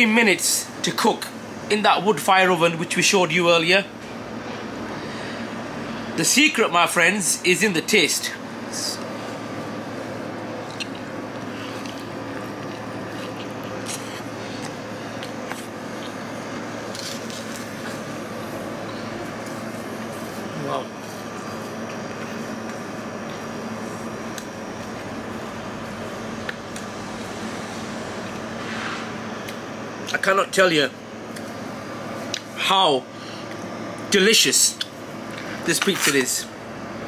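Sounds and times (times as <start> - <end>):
steady machine hum: 0.0 - 37.0
man chewing food: 10.6 - 16.2.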